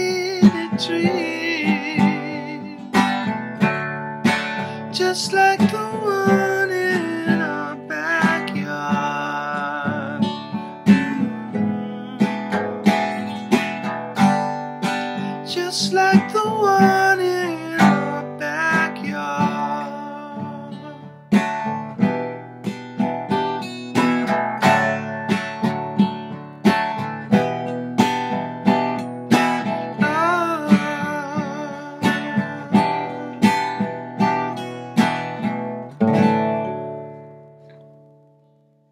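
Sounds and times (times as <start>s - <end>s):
acoustic guitar strumming: 0.0s - 38.9s.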